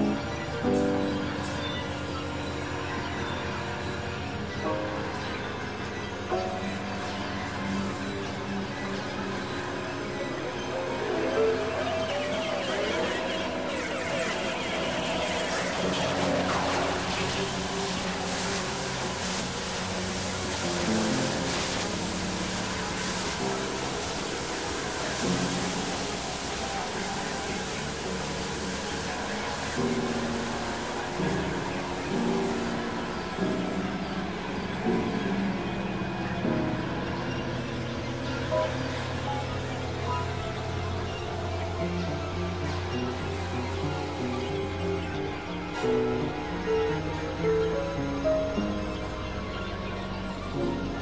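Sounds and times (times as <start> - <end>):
electronic synthesizer drones: 0.0 - 51.0
steady noisy hiss: 0.0 - 51.0.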